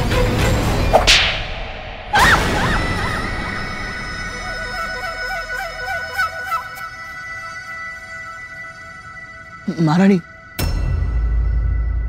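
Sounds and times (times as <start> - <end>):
dramatic background music: 0.0 - 12.0
whip-crack sound effect: 0.9 - 2.4.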